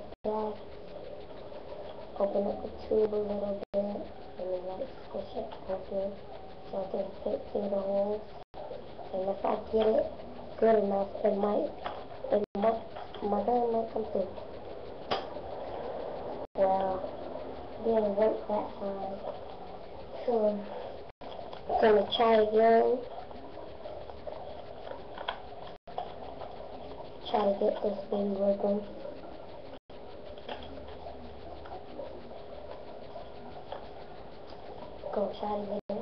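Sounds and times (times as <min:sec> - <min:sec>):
room hum: 0:00.0 - 0:36.0.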